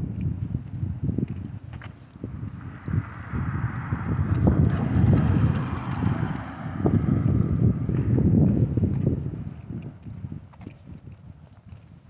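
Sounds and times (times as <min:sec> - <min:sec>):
footsteps on concrete: 0:00.0 - 0:03.3, 0:05.5 - 0:12.0
wind buffeting microphone: 0:00.0 - 0:12.0.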